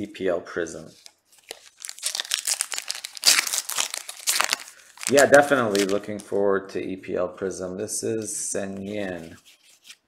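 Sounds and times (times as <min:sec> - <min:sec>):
plastic wrapper crinkling: 0:01.0 - 0:06.3.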